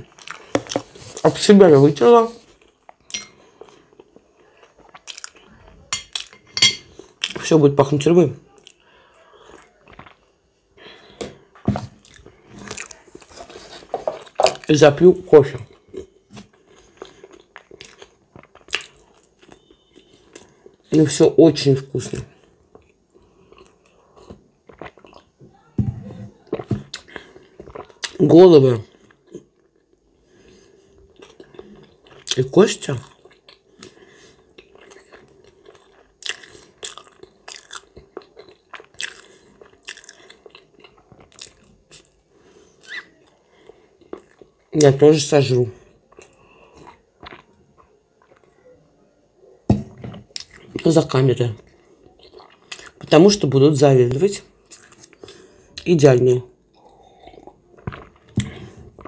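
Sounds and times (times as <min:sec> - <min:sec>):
person chewing food: 0:00.0 - 0:01.3, 0:02.4 - 0:07.5, 0:08.5 - 0:10.3, 0:11.0 - 0:14.7, 0:15.6 - 0:20.9, 0:22.3 - 0:25.4, 0:26.4 - 0:28.2, 0:28.8 - 0:44.8, 0:45.8 - 0:48.5, 0:49.8 - 0:53.2, 0:54.5 - 0:55.9, 0:56.6 - 0:59.0.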